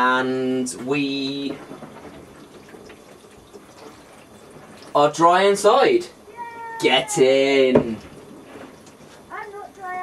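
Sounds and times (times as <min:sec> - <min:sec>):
hose water spraying on roof: 0:00.9 - 0:10.0.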